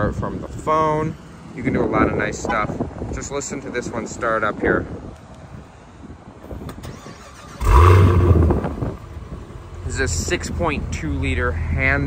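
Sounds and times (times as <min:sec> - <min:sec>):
car engine starting and revving: 0:06.7 - 0:11.3
car engine idling: 0:07.6 - 0:12.0.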